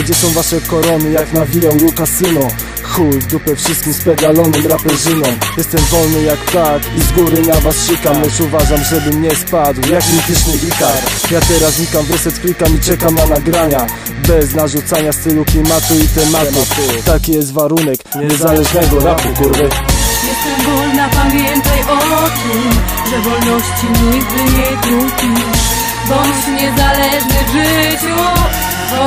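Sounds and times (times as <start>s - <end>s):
bass and drums: 0.0s - 29.0s
rapping over a beat: 0.0s - 29.0s.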